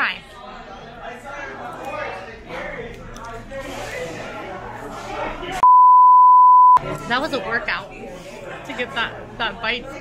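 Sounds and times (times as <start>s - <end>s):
censor bleep tone: 5.6s - 6.8s.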